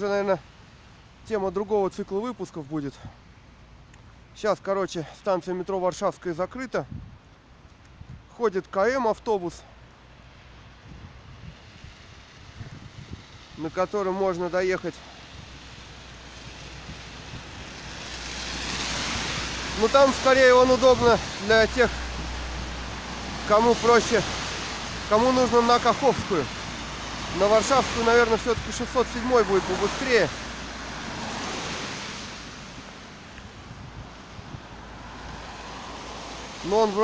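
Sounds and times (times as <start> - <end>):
tyres hissing on wet road: 0.0 - 6.1, 7.4 - 37.0.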